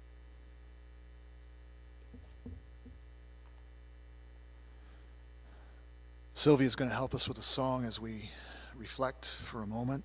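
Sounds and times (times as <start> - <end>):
electrical mains hum: 0.0 - 10.0
microphone handling thumps: 2.1 - 3.1.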